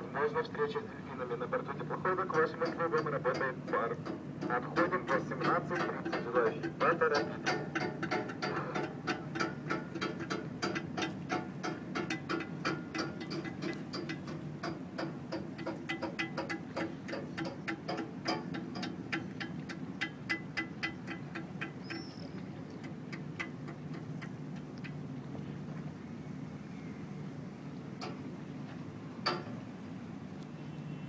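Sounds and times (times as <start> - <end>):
rapid uneven clicking: 2.1 - 25.0.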